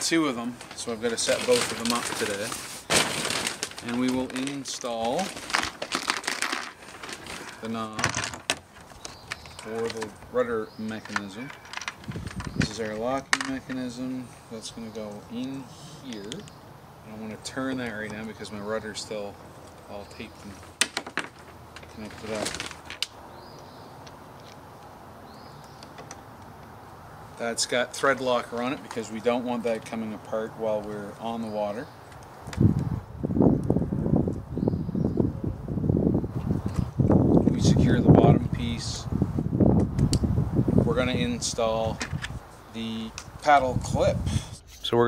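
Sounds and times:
outdoor background noise: 0.0s - 45.0s
plastic bag crinkling: 0.4s - 10.1s, 20.6s - 23.1s
bird chirping: 8.6s - 20.8s, 23.2s - 26.7s, 34.5s - 35.4s.

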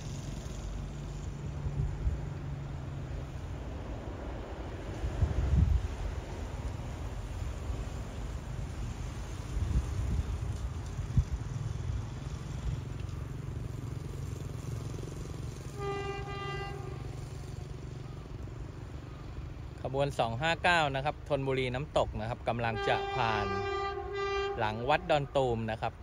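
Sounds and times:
locomotive horn blast: 15.2s - 17.9s, 22.4s - 25.7s.

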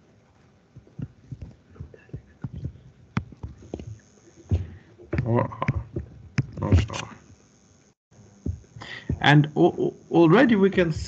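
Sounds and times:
stylus tapping on tablet: 0.8s - 7.0s.

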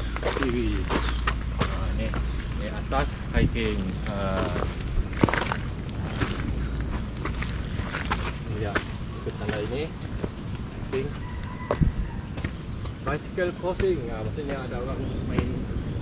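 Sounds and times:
footsteps on wet dirt trail: 0.0s - 15.5s
low rumble on microphone: 0.0s - 16.0s.

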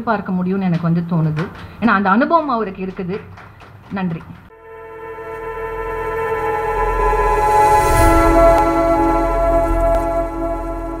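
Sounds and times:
held electronic chord: 4.5s - 11.0s.

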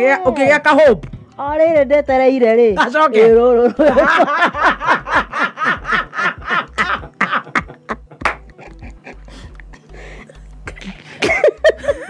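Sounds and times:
woman laughing: 3.6s - 9.9s, 10.7s - 12.0s.

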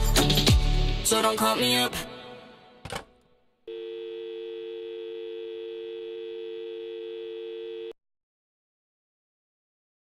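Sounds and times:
telephone dial tone: 3.7s - 8.0s.

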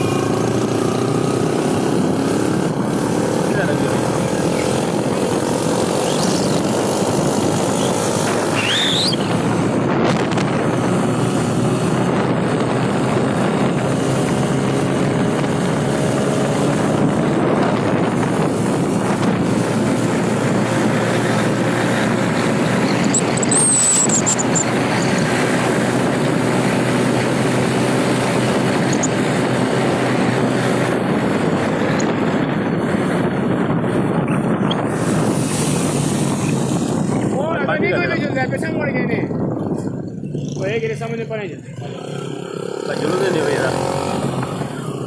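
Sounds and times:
vehicle engine and road noise: 0.0s - 45.0s.

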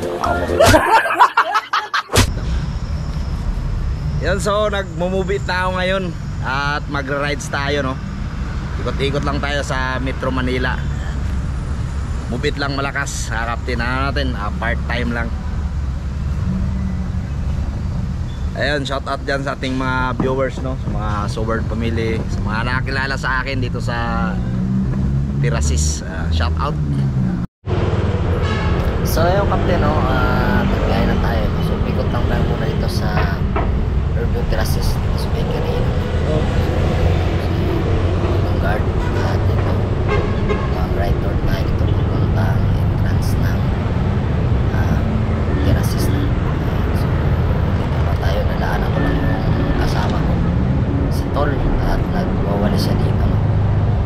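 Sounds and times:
road and wind noise: 0.0s - 54.0s
vehicle engine rumbling: 0.0s - 54.0s.

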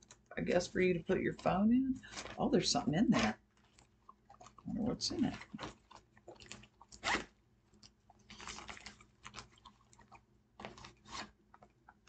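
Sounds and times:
fabric pouch rustling: 5.3s - 7.4s, 8.2s - 11.7s.

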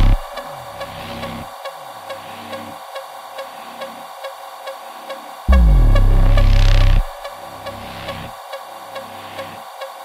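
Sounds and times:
low tones: 0.0s - 0.5s, 5.5s - 7.3s
soft sustained synth pads: 0.0s - 1.5s, 5.5s - 8.3s.

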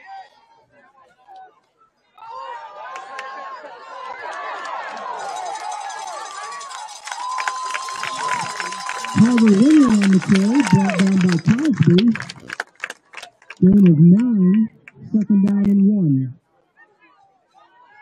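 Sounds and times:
crowd cheering and yelling: 2.2s - 12.5s
scattered claps: 4.6s - 15.7s.

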